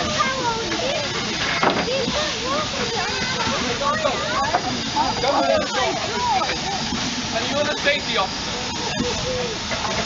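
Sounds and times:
adults and children chattering: 0.0 - 10.0
steam hissing from locomotive: 0.0 - 10.0.

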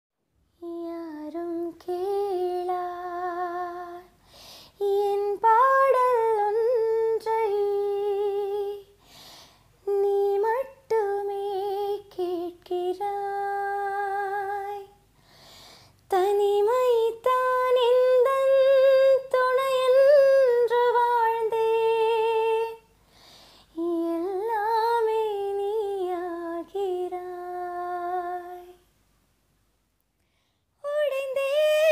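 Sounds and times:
woman singing unaccompanied: 0.6 - 4.2, 4.8 - 9.0, 9.8 - 15.0, 16.0 - 22.9, 23.7 - 28.8, 30.8 - 31.9.

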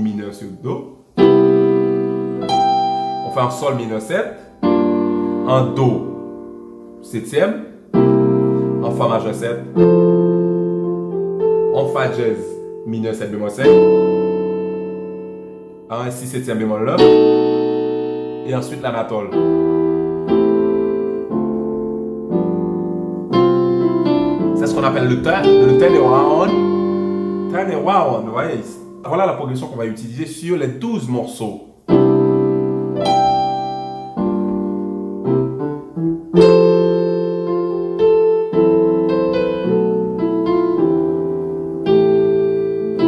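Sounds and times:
keyboard piano playing slow chords: 0.0 - 29.7, 31.8 - 43.0.

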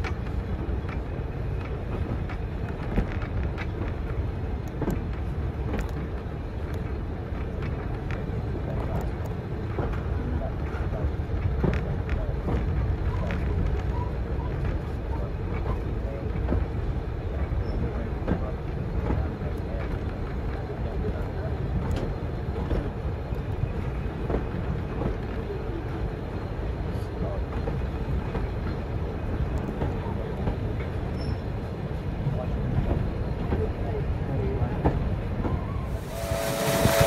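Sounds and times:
train carriage rumbling on rails: 0.0 - 37.0.

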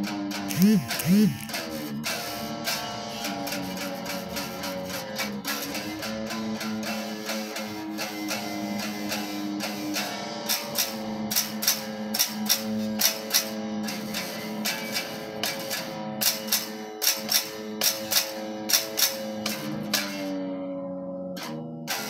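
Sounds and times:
electric guitar picked notes: 0.0 - 16.8.

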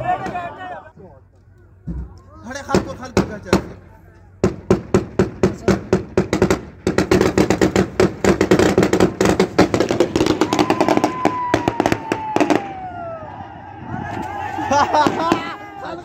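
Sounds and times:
crowd noise: 0.0 - 4.7, 9.0 - 16.0
rapid gunfire: 4.4 - 11.2.

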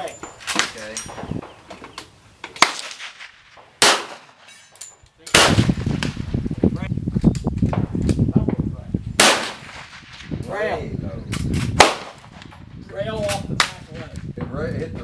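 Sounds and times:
wind buffeting microphone: 0.3 - 1.9, 5.3 - 15.0
pistol shots: 2.6 - 4.4, 5.3 - 6.2, 9.2 - 10.4, 11.8 - 12.4.

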